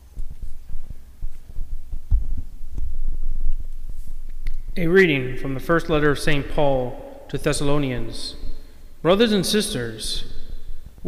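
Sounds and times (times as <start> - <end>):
microphone handling thumps: 0.0 - 4.8.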